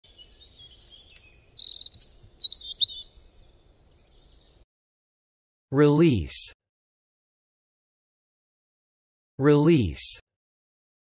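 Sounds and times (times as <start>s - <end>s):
birds chirping and whistling: 0.1s - 4.6s.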